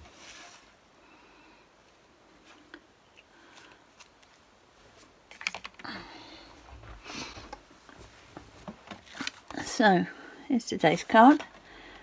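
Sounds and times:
rustling handling noises: 0.0 - 0.9, 1.9 - 10.1.

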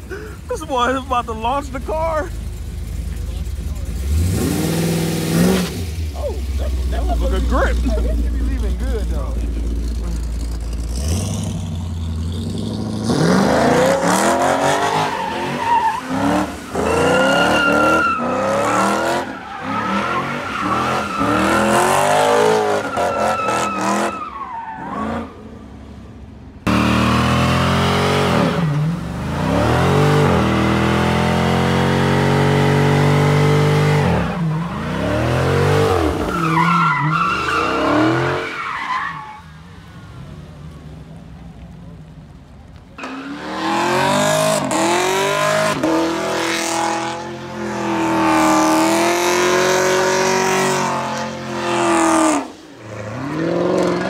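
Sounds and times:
car engines revving hard: 0.0 - 25.5, 26.6 - 38.8, 43.0 - 54.0
tyres squealing on asphalt: 0.3 - 25.5, 34.0 - 40.4, 43.0 - 54.0.

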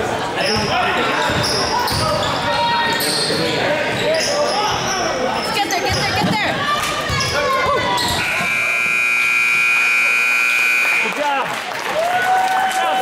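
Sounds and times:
scoreboard buzzer tone: 8.2 - 11.3.

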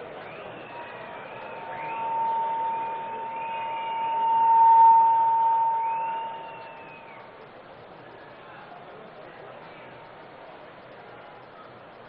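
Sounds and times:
faint wavering whistles: 0.0 - 7.4
high-pitched feedback tone: 1.4 - 7.1.

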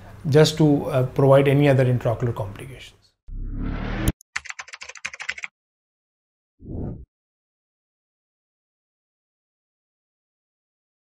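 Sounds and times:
rising whoosh: 3.3 - 4.2
keyboard typing clicks: 4.4 - 5.5.

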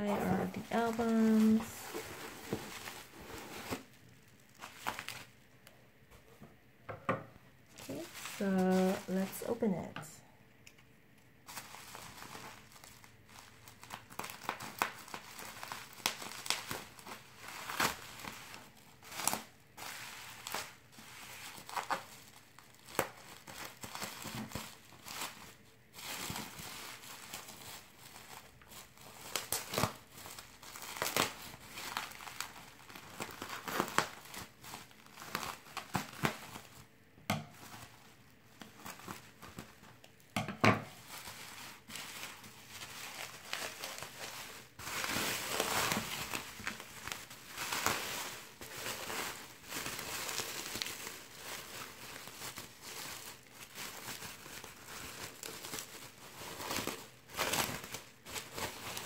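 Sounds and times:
bubble wrap crinkling and crackling: 0.0 - 6.3, 7.6 - 10.3, 11.1 - 40.3, 40.9 - 59.0
bubble wrap snap: 11.5 - 18.4, 22.7 - 25.3.

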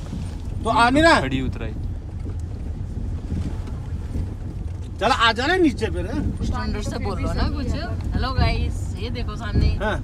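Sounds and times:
car engine and tyres rumbling: 0.0 - 10.0.

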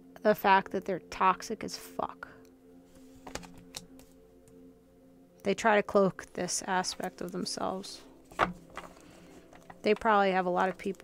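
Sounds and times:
faint background music: 0.0 - 11.0
cards being shuffled: 3.0 - 4.1, 8.3 - 11.0.

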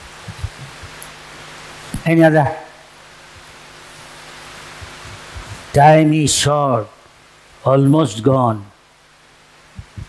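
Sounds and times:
faint low bumps: 0.0 - 1.0, 4.8 - 5.8, 9.7 - 10.0
sound system hiss: 0.0 - 10.0.

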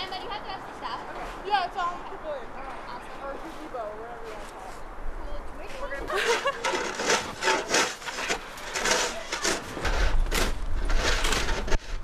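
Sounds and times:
snow shovels scraping snow: 3.0 - 4.8, 5.7 - 12.0.

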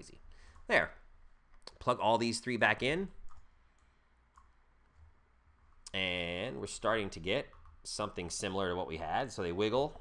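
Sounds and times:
faint computer mouse clicks: 3.3 - 4.6.

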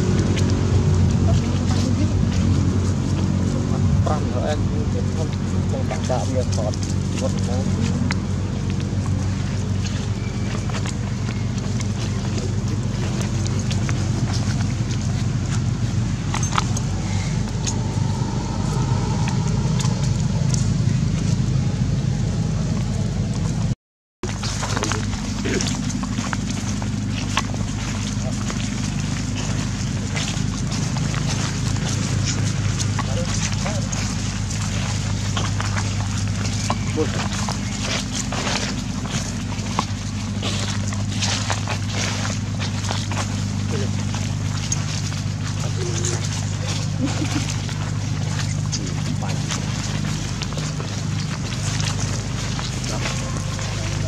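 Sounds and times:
footsteps crunching dry leaves: 0.0 - 54.0
low engine hum: 0.0 - 54.0.

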